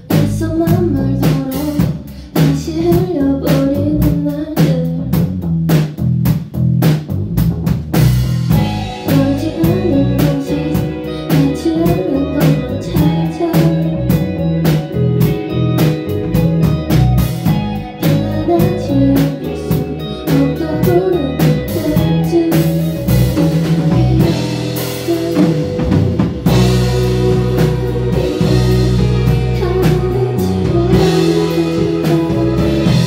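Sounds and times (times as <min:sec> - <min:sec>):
woman singing: 0:00.0 - 0:05.2, 0:08.6 - 0:14.8, 0:17.4 - 0:33.0
live indie rock band: 0:00.0 - 0:33.0
drum strikes: 0:23.2 - 0:33.0.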